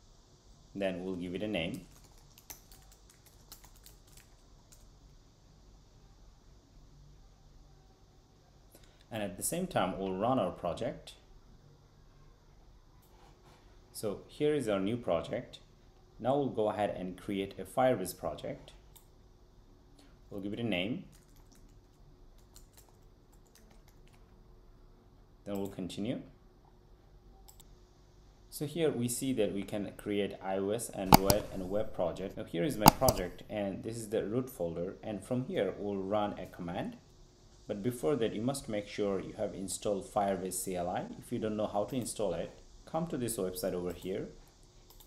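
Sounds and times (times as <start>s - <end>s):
faint steady hum: 0.0s - 45.0s
computer keyboard typing: 1.8s - 4.9s, 21.1s - 24.2s, 31.1s - 32.1s, 32.8s - 33.4s.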